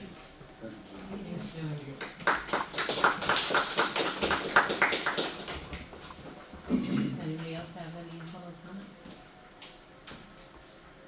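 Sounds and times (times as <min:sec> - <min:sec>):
people applauding: 0:02.0 - 0:05.9.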